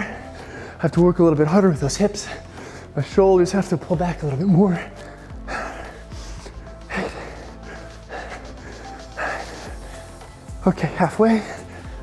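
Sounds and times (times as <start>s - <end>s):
man breathing forcefully: 0.0s - 0.9s, 2.1s - 3.0s, 4.3s - 12.0s
background music: 0.0s - 12.0s.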